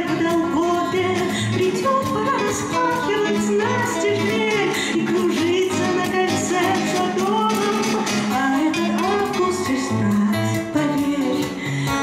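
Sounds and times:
acoustic guitars: 0:00.0 - 0:12.0
woman singing: 0:00.0 - 0:12.0.

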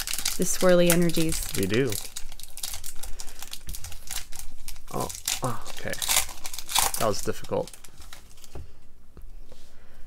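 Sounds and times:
faint rustling of cards: 0:00.0 - 0:10.0.

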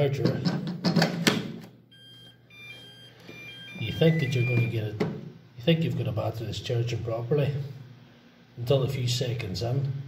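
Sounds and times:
battery charger beeping tune: 0:01.9 - 0:04.8.

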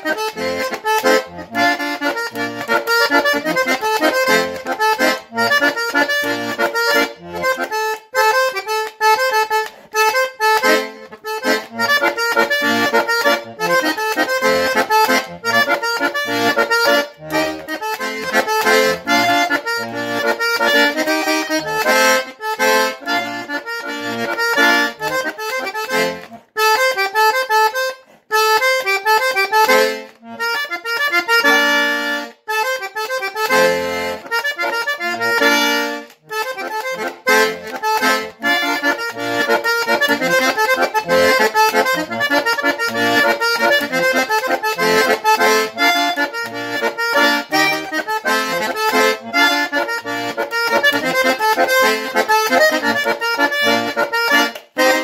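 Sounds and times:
button accordion playing: 0:00.0 - 0:55.0.

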